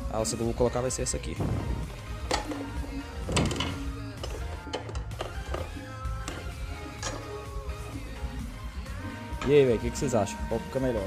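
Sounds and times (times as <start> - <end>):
background music with held notes: 0.0 - 11.0
metal handle knocking: 3.3 - 5.7.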